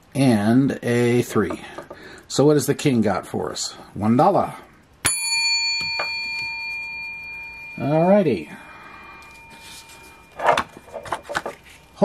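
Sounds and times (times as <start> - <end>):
coin ringing: 9.0 - 12.0.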